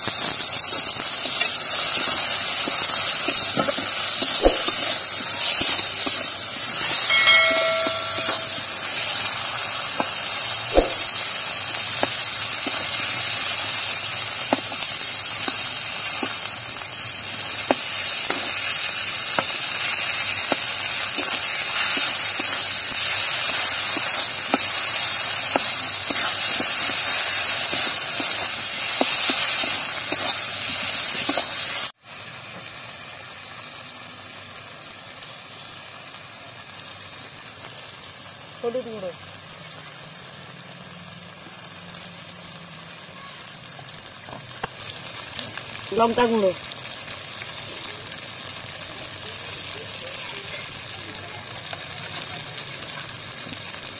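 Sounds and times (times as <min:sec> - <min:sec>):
food sizzling in hot oil: 0:00.0 - 0:53.9.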